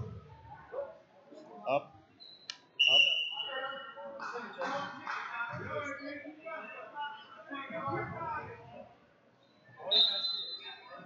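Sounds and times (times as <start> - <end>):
referee's whistle: 2.2 - 3.8, 9.8 - 10.8.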